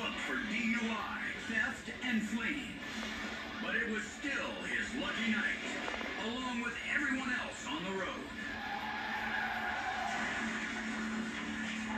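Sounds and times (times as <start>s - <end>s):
car tires skidding: 8.4s - 11.9s.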